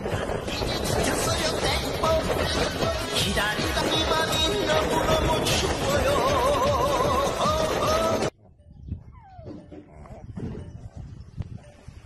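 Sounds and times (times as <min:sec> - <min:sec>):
music: 0:00.0 - 0:12.0
puppy whimpering: 0:09.0 - 0:10.3.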